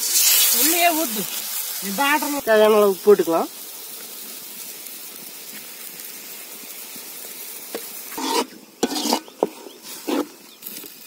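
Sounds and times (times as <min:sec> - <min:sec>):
gravy sizzling in metal pot: 0:00.0 - 0:11.0
metal ladle scraping pot: 0:08.2 - 0:10.3.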